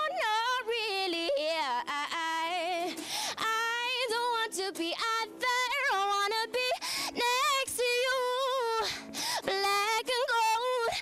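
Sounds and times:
woman singing wordless melody: 0:00.0 - 0:11.0.

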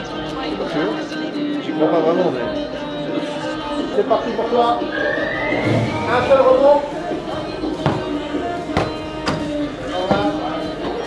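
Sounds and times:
background music: 0:00.0 - 0:11.0
football kicked and bouncing: 0:07.8 - 0:09.4.

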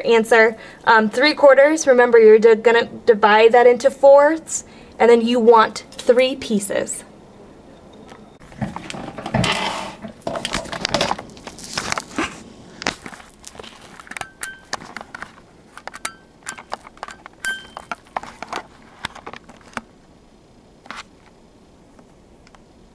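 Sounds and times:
camera handling noise: 0:20.8 - 0:21.4.

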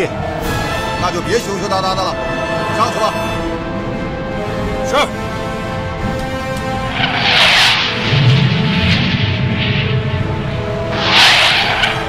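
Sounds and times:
orchestral music: 0:00.0 - 0:12.0
jet rushing whoosh: 0:06.8 - 0:12.0.

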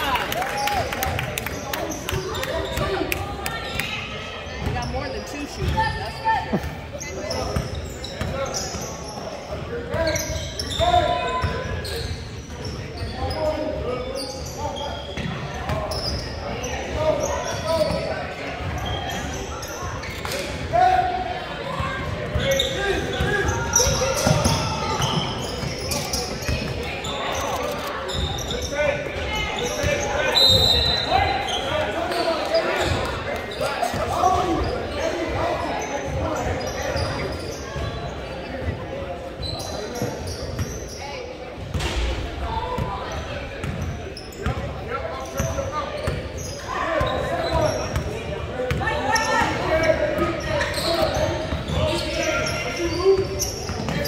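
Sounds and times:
hubbub of indistinct voices: 0:00.0 - 0:54.0.

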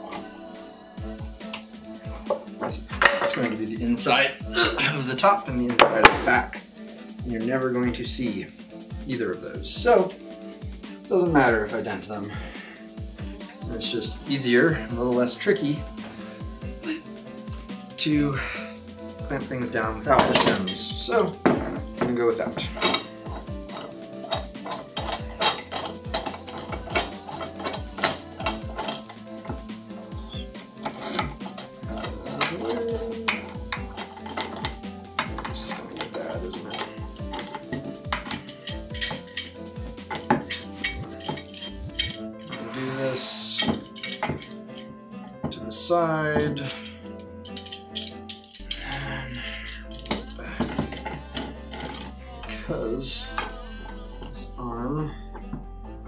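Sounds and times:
background music: 0:00.0 - 0:56.0
metal clamp handles clinking: 0:02.2 - 0:03.6, 0:19.8 - 0:42.7, 0:43.6 - 0:45.6, 0:46.4 - 0:52.1.

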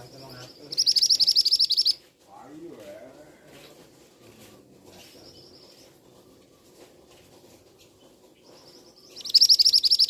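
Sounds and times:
bird giving high sharp notes: 0:00.0 - 0:02.0, 0:09.1 - 0:10.0.

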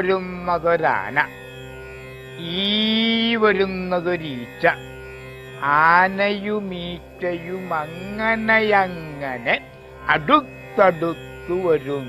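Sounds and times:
person chanting verse: 0:00.0 - 0:01.3, 0:02.4 - 0:04.8, 0:05.6 - 0:12.0.

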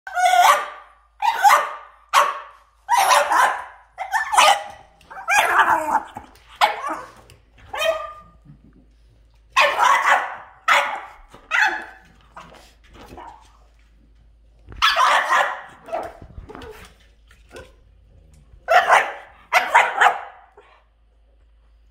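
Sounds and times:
dog play-barking: 0:00.1 - 0:08.4, 0:09.5 - 0:13.5, 0:14.7 - 0:17.8, 0:18.6 - 0:20.7.

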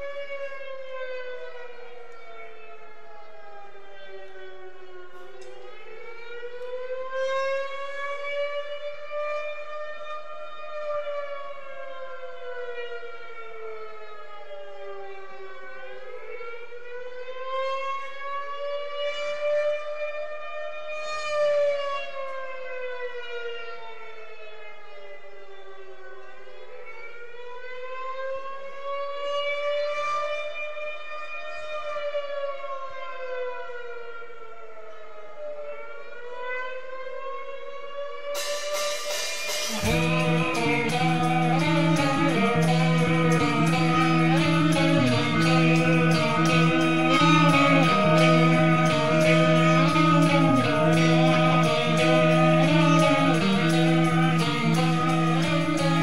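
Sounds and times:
air-raid siren wailing: 0:00.0 - 0:56.0.

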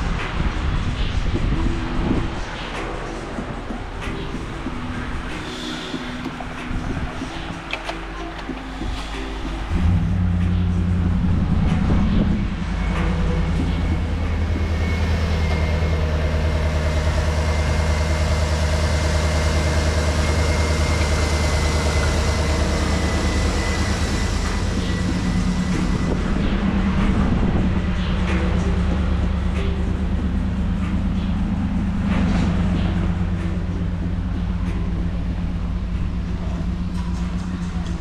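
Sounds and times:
car engine idling: 0:00.0 - 0:38.0
faint high whine: 0:00.8 - 0:37.9.

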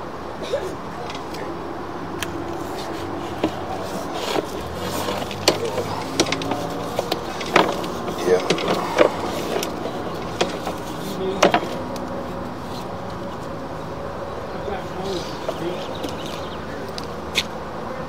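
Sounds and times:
steady low hum: 0:00.0 - 0:18.0
faint voices: 0:00.4 - 0:17.0.

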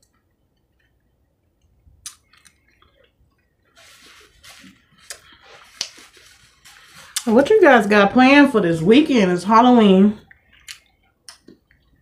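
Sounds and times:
soft chewing: 0:00.1 - 0:07.2, 0:10.2 - 0:12.0.

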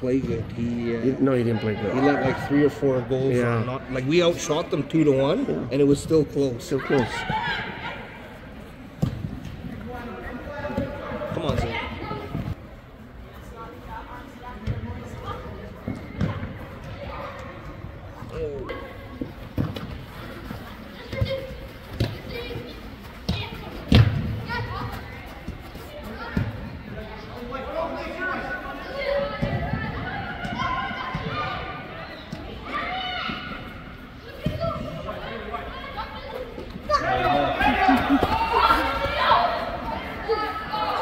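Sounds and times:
spectators shouting: 0:36.9 - 0:41.0.

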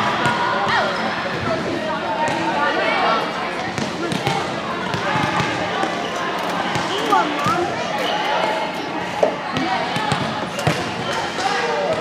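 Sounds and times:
girls chattering: 0:00.7 - 0:11.5.

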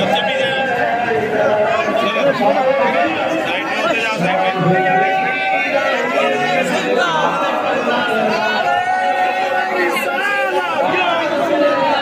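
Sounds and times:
crowd of men talking: 0:00.0 - 0:12.0.

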